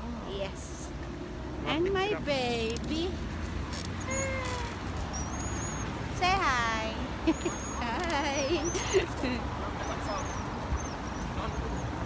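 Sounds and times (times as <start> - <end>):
toddler vocalizing: 4.0 - 5.0.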